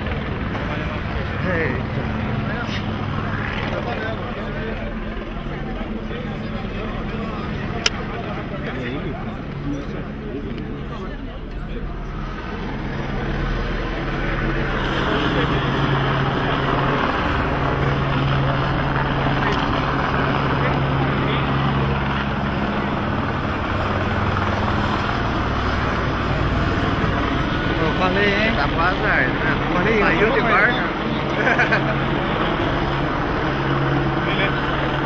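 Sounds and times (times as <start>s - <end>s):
vehicle engine and road noise: 0.0s - 35.0s.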